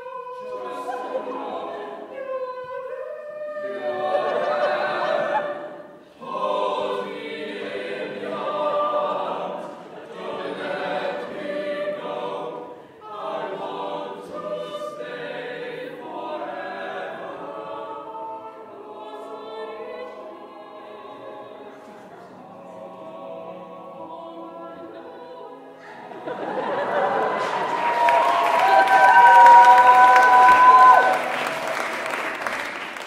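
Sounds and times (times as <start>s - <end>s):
group singing in close harmony: 0.0s - 31.5s.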